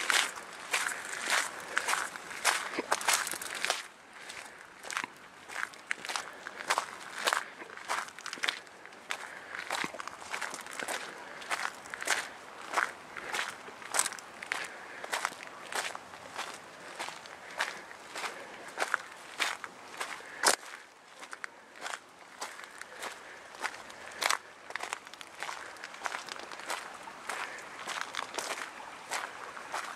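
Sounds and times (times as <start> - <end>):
footsteps crunching on gravel: 0.0 - 29.9.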